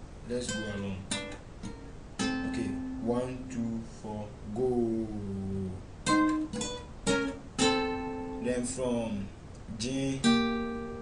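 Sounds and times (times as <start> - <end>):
acoustic guitar picking notes: 0.3 - 11.0.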